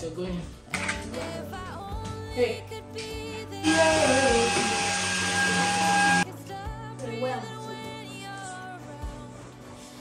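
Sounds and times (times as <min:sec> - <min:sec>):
background music: 0:00.0 - 0:10.0
small electric motor whining: 0:03.6 - 0:06.2.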